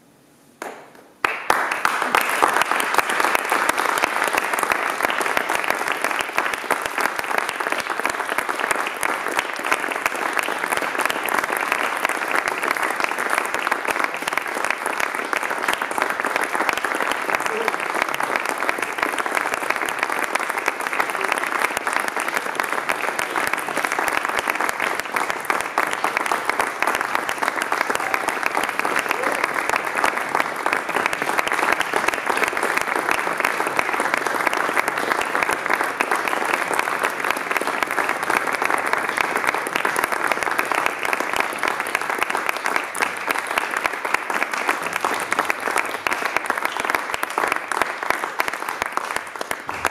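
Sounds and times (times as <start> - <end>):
audience applauding: 0.6 - 49.9.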